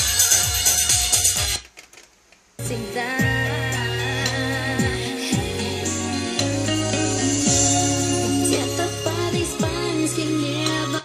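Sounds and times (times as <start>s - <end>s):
music from cassette over speakers: 0.0s - 11.0s.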